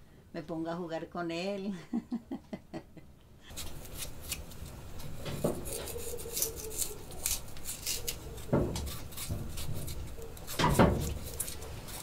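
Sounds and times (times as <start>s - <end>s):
knife scraping vegetable peel: 3.5s - 12.0s.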